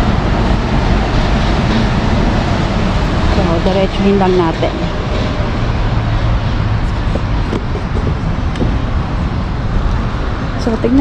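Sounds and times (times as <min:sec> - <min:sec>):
deep outdoor rumble: 0:00.0 - 0:11.0.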